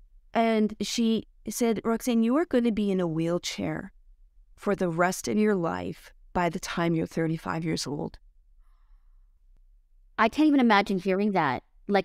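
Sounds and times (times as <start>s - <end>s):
woman speaking: 0.4s - 3.9s, 4.6s - 8.2s, 10.2s - 12.0s.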